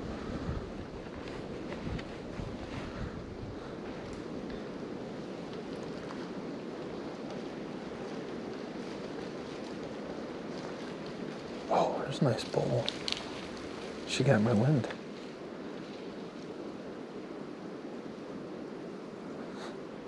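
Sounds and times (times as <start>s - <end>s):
wind on microphone: 0.0s - 11.7s.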